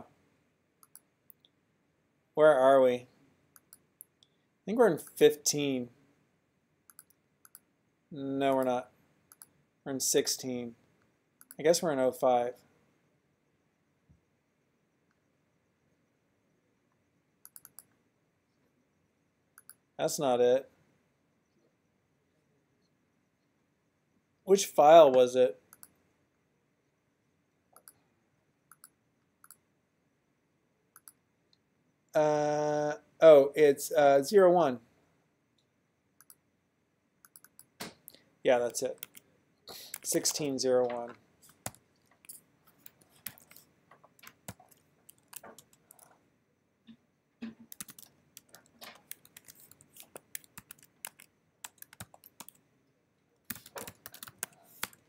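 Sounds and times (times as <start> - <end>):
keyboard typing clicks: 6.9 - 7.6, 17.4 - 18.0, 28.7 - 29.6, 37.2 - 38.2, 39.0 - 39.2, 39.8 - 46.1, 47.4 - 52.6, 53.5 - 55.0.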